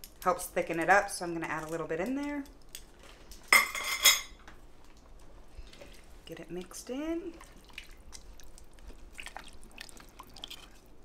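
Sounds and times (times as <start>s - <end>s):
wet squelches of stew: 4.8s - 11.0s.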